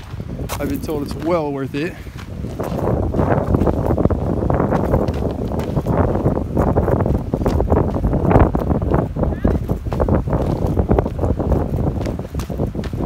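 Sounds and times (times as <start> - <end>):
footsteps on gravelly wooden steps: 0.0 - 13.0
wind buffeting microphone: 0.0 - 13.0.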